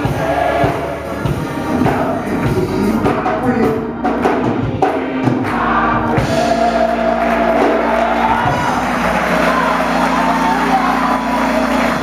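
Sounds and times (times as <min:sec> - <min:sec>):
choir and congregation singing: 0:00.0 - 0:12.0
crowd noise: 0:00.0 - 0:12.0
held organ chord: 0:05.9 - 0:12.0.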